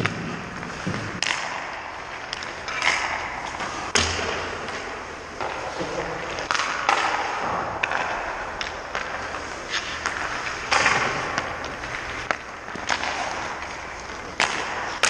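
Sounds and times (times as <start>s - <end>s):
hockey sticks striking pucks: 0.0s - 15.0s
pucks hitting boards: 0.0s - 15.0s
skate blades scraping ice: 0.0s - 15.0s.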